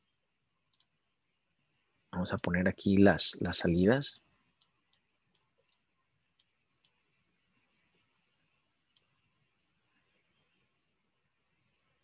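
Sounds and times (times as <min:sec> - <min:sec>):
faint computer mouse click: 0:00.7 - 0:00.9, 0:08.9 - 0:09.1.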